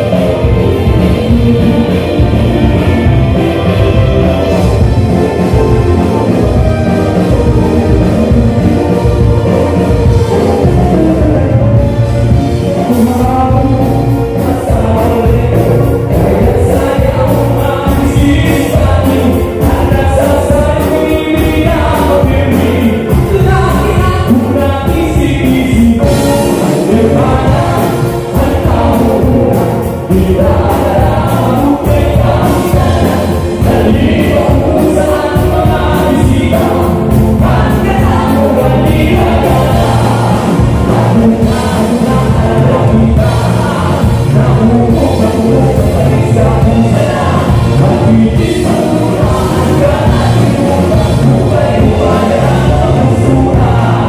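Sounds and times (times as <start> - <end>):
drum kit with steady cymbal beat: 0.0 - 54.0
electric bass: 0.0 - 54.0
electric guitar: 0.0 - 54.0
live band dance music: 0.0 - 54.0
person singing: 0.0 - 54.0.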